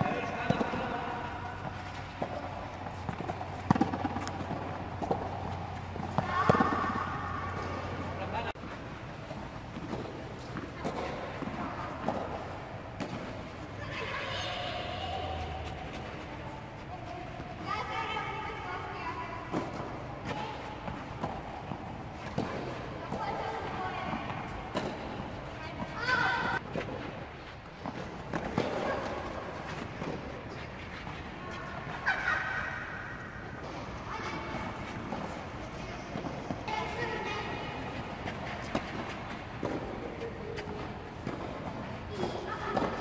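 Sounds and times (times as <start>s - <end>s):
rackets hitting tennis balls: 0.0s - 43.0s.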